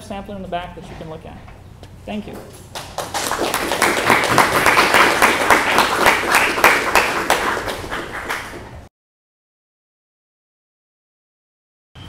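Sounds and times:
audience applauding: 2.8s - 8.9s.

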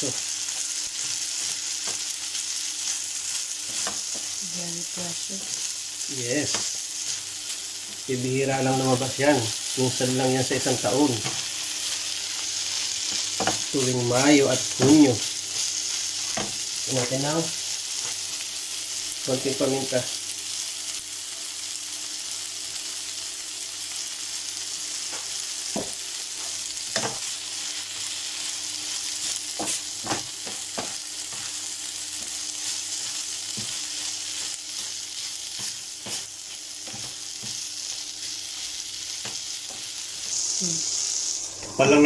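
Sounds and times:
food sizzling in a frying pan: 0.0s - 42.0s.

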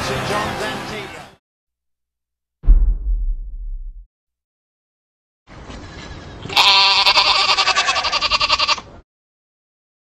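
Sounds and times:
goat bleating: 5.8s - 8.9s.

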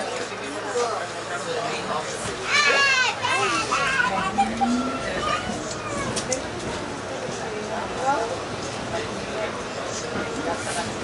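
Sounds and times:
passenger chatter: 0.0s - 11.0s
subway car running: 0.0s - 11.0s
child's voice: 2.8s - 6.4s.

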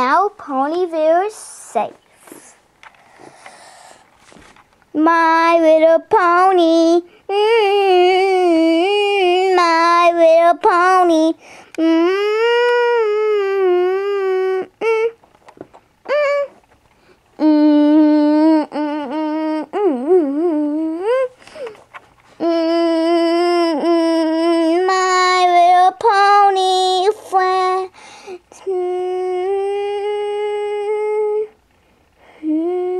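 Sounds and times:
child humming: 7.0s - 9.9s, 11.2s - 15.2s, 16.0s - 16.6s, 17.4s - 21.8s, 22.4s - 25.6s, 26.2s - 31.6s, 32.2s - 32.9s.

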